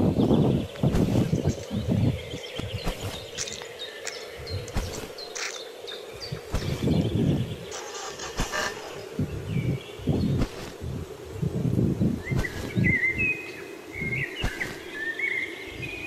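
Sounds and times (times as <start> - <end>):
low rumbling on microphone: 0.0 - 5.5, 6.1 - 7.8, 8.4 - 13.4
birds chirping: 0.0 - 16.0
steady low hum: 0.0 - 16.0.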